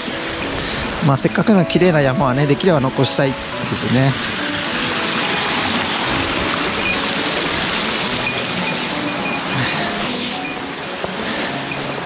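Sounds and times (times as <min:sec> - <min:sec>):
stream running over rocks: 0:00.0 - 0:12.0.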